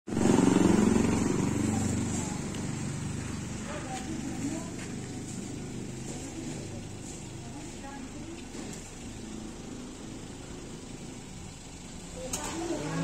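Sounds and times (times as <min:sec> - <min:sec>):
engine running: 0:00.1 - 0:13.0.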